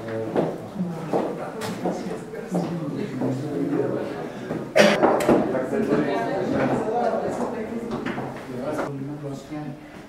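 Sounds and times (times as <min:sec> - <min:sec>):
loud cough: 0:04.8 - 0:05.1.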